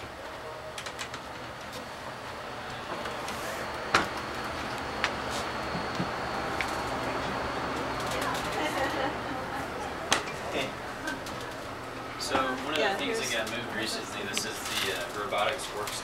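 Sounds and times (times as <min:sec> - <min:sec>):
room noise: 0:00.0 - 0:16.0.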